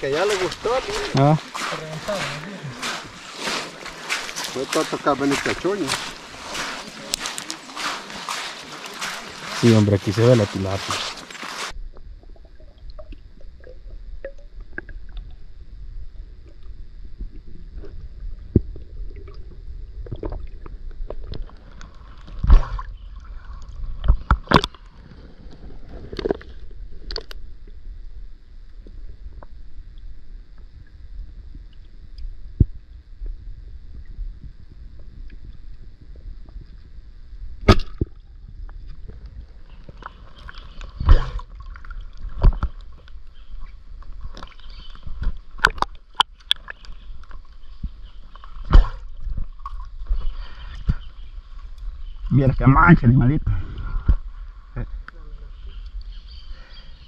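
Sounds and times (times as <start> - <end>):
muffled underwater river rumble: 0.0 - 56.7
sharp underwater knocks and clicks: 17.8 - 19.4, 24.0 - 27.4, 37.6 - 50.2.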